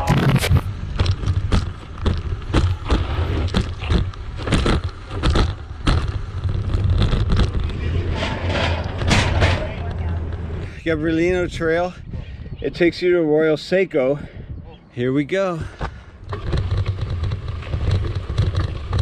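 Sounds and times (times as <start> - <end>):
bike rattling over rough trail: 0.0 - 10.9, 15.8 - 19.0
low rumble: 0.0 - 12.8.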